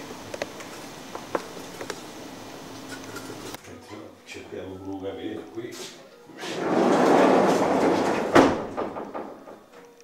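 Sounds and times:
heavy door scraping open: 6.4s - 9.6s.

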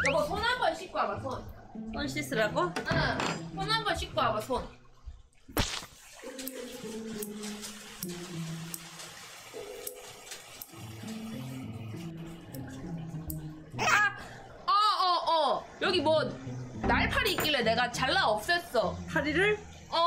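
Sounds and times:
light background music: 0.0s - 5.0s, 6.2s - 20.0s.

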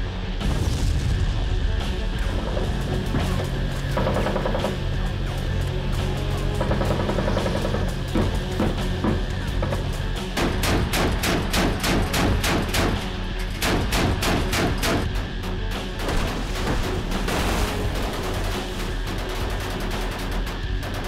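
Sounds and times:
background music: 0.0s - 21.0s
deck gun firing: 10.4s - 15.1s.

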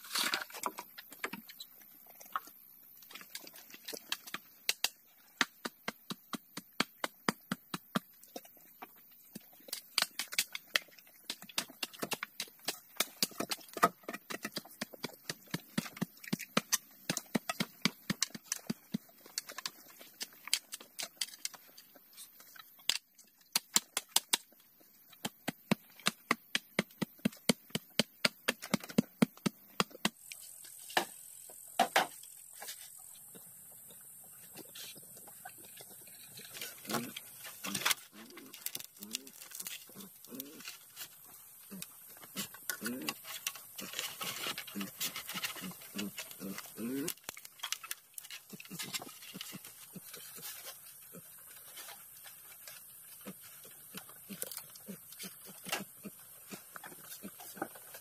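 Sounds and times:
bamboo poles knocking: 9.8s - 21.6s, 22.8s - 24.6s, 25.2s - 30.2s
steady high hiss: 30.1s - 38.5s.

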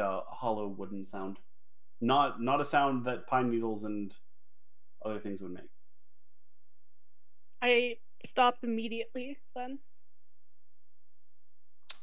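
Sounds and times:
person speaking: 0.0s - 1.4s, 2.0s - 4.1s
faint low hum: 0.0s - 4.2s, 5.0s - 9.8s.

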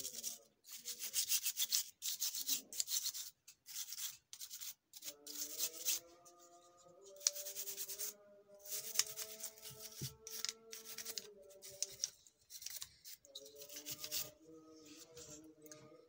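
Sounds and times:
toothbrush scrubbing circuit board: 0.0s - 6.0s, 7.2s - 14.4s
faint background music: 0.0s - 16.0s.

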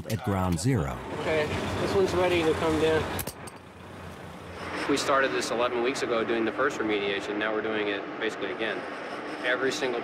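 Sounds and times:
man speaking: 0.0s - 1.0s
work space background noise: 0.0s - 10.0s.

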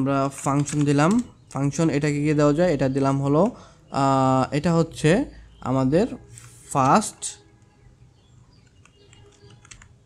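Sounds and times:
computer keyboard typing: 0.2s - 1.6s, 8.5s - 10.0s.

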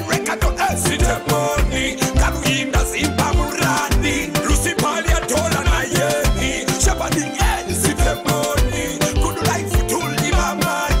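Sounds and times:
pop song: 0.0s - 11.0s
kick drum: 0.4s - 11.0s.

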